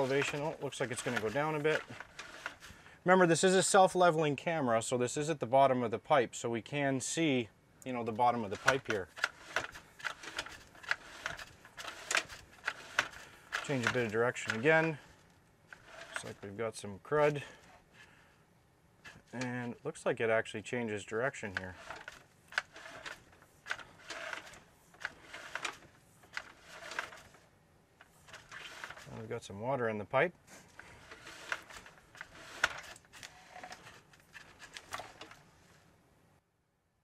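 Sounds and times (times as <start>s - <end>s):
cable scraping and rattling in drain: 0.0s - 2.8s, 8.2s - 15.1s, 15.7s - 16.5s, 21.4s - 27.4s, 28.0s - 29.2s, 30.7s - 35.4s.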